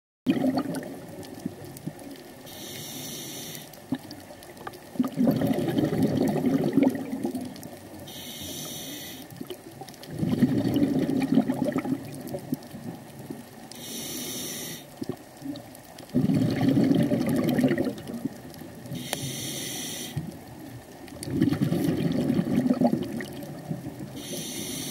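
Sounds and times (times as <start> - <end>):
exhaust bubbles rumbling underwater: 0.3 - 2.5, 3.8 - 8.1, 9.4 - 13.8, 15.0 - 19.1, 20.2 - 24.9
regulator inhale hiss: 2.4 - 3.8, 8.0 - 9.4, 13.7 - 15.0, 18.9 - 20.4, 24.1 - 24.9.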